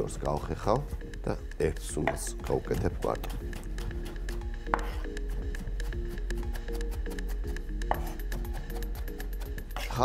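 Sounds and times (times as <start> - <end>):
background music: 0.0 - 10.0
knife chopping on wooden board: 2.0 - 9.9.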